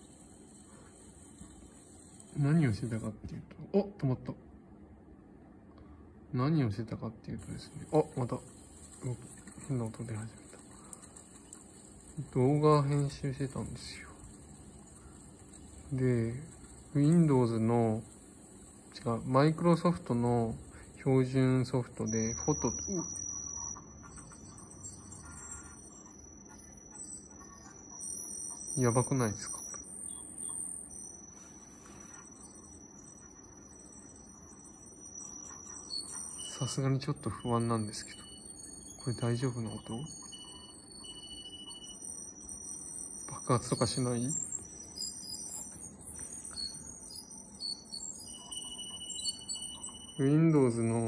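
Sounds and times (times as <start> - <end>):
short high-pitched electronic beeps: 0.0 - 3.2, 7.4 - 51.0
lower steady whistle: 0.0 - 3.4, 6.7 - 51.0
thin high-pitched tone: 0.0 - 3.4, 7.4 - 51.0.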